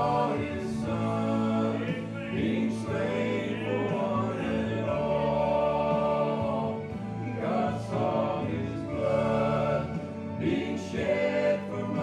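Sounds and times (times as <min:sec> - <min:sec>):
male vocal quartet singing: 0:00.0 - 0:12.0.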